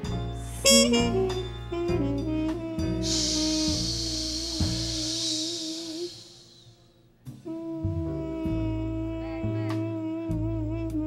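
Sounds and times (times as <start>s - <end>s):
upright bass: 0.0s - 6.2s, 7.4s - 11.0s
horn playing held notes: 0.0s - 6.8s, 7.5s - 11.0s.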